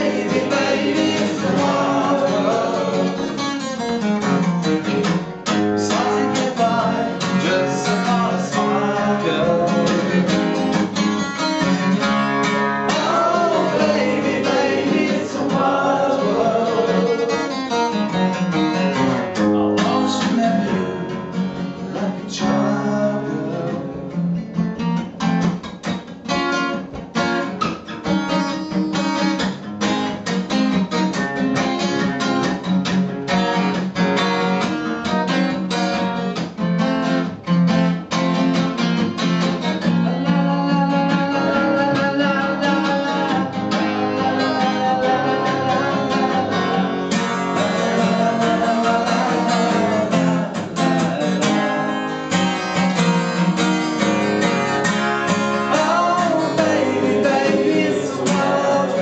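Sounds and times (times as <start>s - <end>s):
acoustic guitar strumming: 0.0s - 59.0s.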